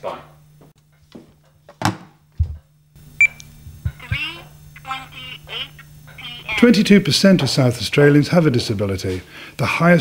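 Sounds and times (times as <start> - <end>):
wristwatch spoken announcement: 4.0 - 7.8.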